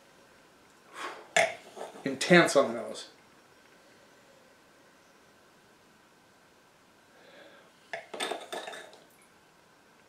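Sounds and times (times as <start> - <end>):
glass scraping and wine swishing: 0.9 - 2.1
glass clinking on stone: 8.0 - 9.0.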